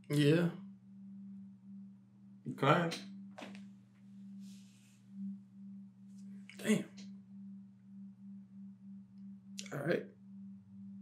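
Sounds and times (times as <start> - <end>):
faint pulsing low hum: 0.0 - 11.0.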